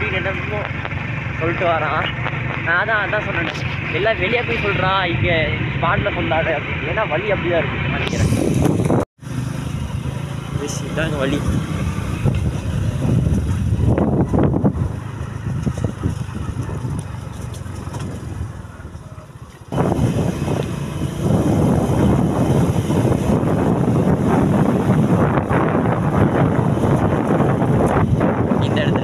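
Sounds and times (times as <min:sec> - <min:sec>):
wind buffeting microphone: 0:08.0 - 0:09.1, 0:11.0 - 0:29.0.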